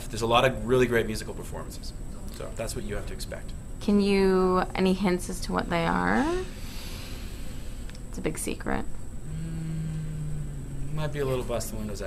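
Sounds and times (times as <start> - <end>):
man humming: 9.2 - 11.7.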